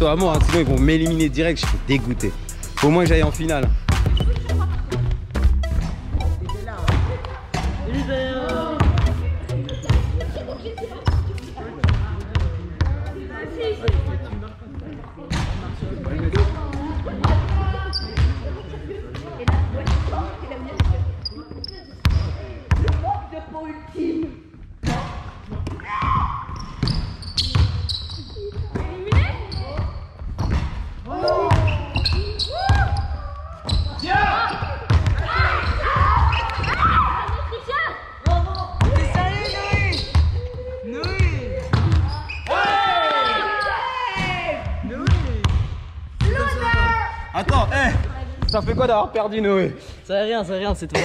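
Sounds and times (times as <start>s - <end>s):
basketballs bouncing on floor: 3.1s - 7.8s, 8.5s - 13.1s, 13.8s - 21.1s, 22.0s - 23.2s, 24.8s - 30.9s, 31.5s - 37.4s, 38.2s - 42.8s, 44.2s - 49.0s
children shouting: 35.2s - 38.0s.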